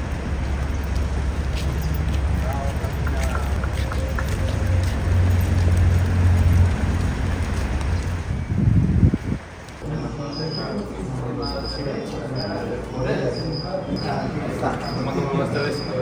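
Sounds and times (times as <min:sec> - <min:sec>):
low outdoor rumble: 0:00.0 - 0:09.8.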